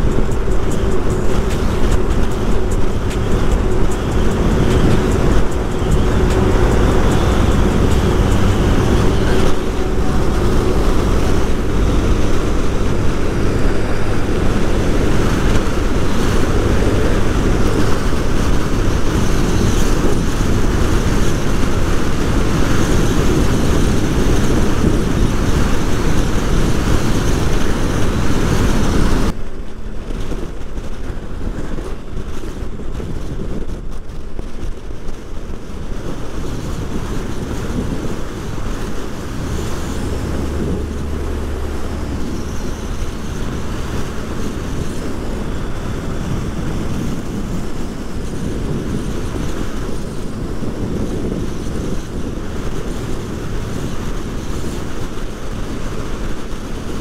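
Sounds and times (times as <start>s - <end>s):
motorcycle engine cruising: 0.0s - 57.0s
wind rush on microphone: 0.0s - 57.0s.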